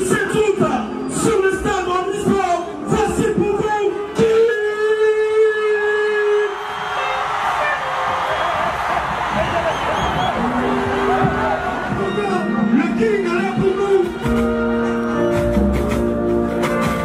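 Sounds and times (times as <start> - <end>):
stadium crowd cheering and screaming: 0.0 - 17.0.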